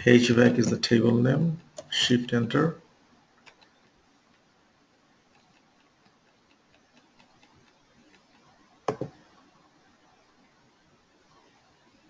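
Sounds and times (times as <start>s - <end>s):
faint ticks: 5.3s - 8.7s.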